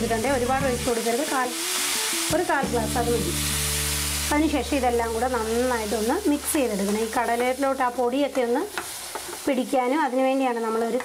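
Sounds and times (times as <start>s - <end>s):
chickpeas sizzling in oil: 0.0s - 11.0s.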